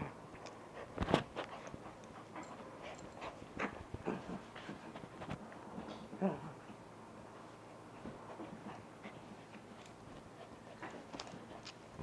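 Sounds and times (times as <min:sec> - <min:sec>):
small dog play-biting: 0:08.3 - 0:12.0.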